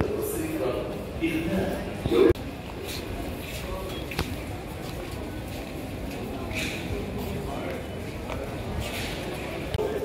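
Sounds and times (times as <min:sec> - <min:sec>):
indistinct voices of passersby: 0:00.0 - 0:10.0
steady background noise: 0:00.0 - 0:10.0.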